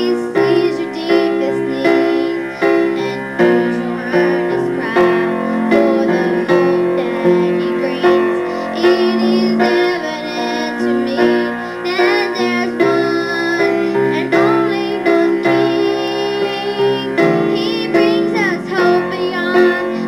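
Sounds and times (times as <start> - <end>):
piano accompaniment: 0.0 - 20.0
woman singing with vibrato: 0.0 - 20.0.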